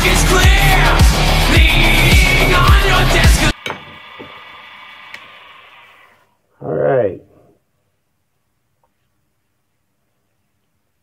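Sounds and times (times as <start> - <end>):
wood lathe humming: 3.6 - 6.2.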